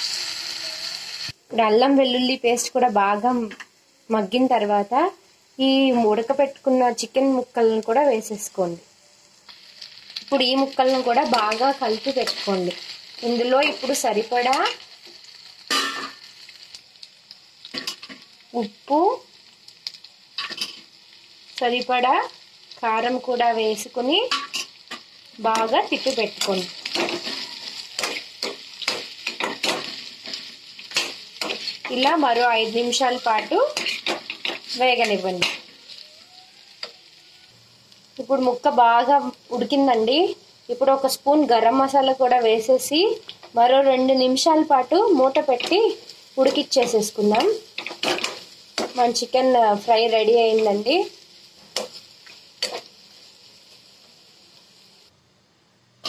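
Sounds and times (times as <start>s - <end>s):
chicken frying: 0.0s - 55.2s
food sizzling in a pan: 0.0s - 56.0s
scraping in a pan: 25.6s - 36.2s, 51.6s - 52.9s.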